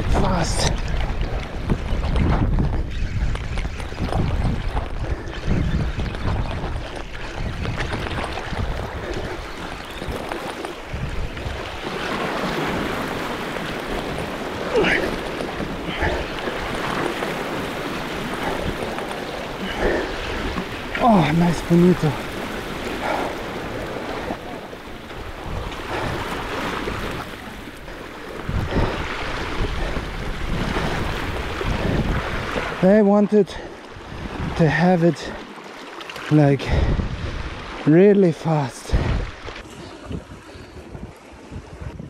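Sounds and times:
wind buffeting microphone: 0.0 - 32.8, 33.5 - 35.4, 36.3 - 37.8, 38.8 - 42.0
sea washing against rocks: 0.0 - 42.0.

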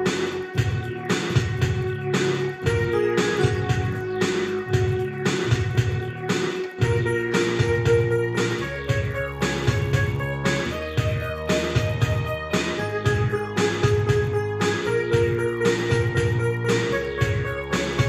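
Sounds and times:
bass accompaniment: 0.0 - 18.0
electronic keyboard chords: 0.0 - 18.0
steady drum rhythm: 0.0 - 18.0.

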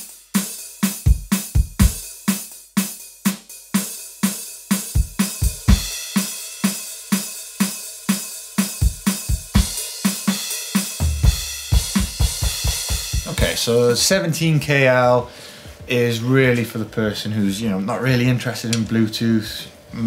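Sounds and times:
cymbals and hi-hat: 0.0 - 15.0
electronic drum kit groove: 0.0 - 15.0.

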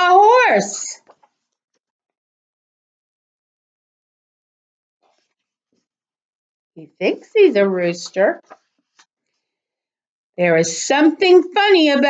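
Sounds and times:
woman speaking: 0.0 - 1.1, 6.8 - 8.6, 10.4 - 12.0
paper book rustling: 8.4 - 9.1.

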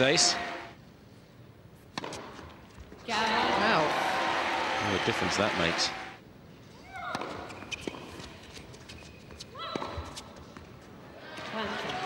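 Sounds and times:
tennis ball hitting racket: 1.9 - 2.5
crowd applause: 3.2 - 6.2.

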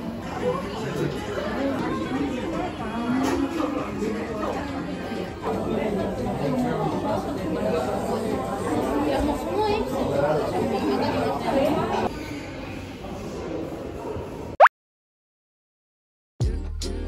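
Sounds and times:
diners chatting: 0.0 - 14.5.

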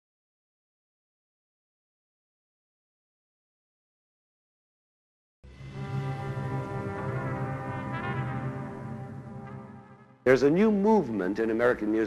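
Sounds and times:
brass holding low chord: 5.5 - 11.4.

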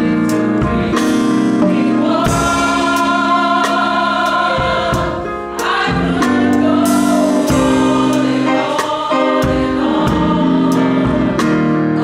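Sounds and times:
drum kit with cymbal strikes: 0.0 - 12.0
gospel choir singing: 0.0 - 12.0
piano: 0.0 - 12.0.

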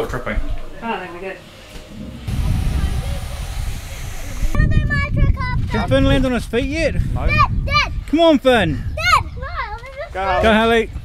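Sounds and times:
wind buffeting microphone: 1.8 - 11.0.

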